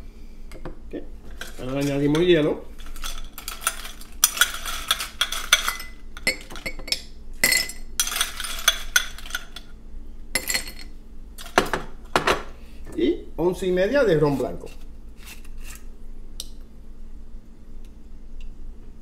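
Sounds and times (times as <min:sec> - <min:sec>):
ice cubes clinking into glass: 0:02.8 - 0:09.6.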